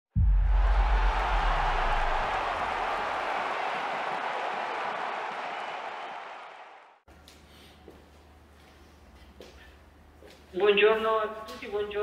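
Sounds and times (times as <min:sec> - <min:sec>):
deep hit: 0:00.1 - 0:03.2.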